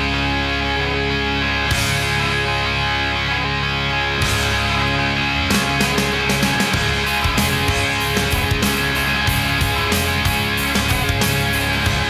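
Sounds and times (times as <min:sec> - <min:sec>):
hard rock band playing: 0:00.0 - 0:12.0.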